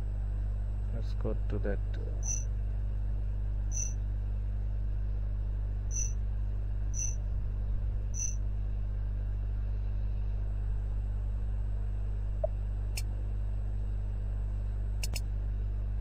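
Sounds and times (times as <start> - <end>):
steady low hum: 0.0 - 16.0
computer mouse clicks: 15.0 - 15.2.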